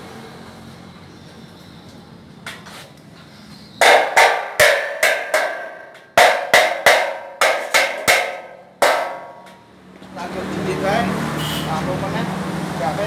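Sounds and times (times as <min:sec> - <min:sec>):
metal channel being struck: 0:03.8 - 0:09.6.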